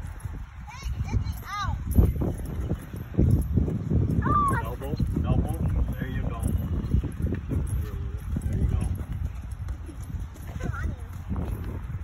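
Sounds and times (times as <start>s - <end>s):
horse hoofbeats on dirt: 0.0s - 12.0s.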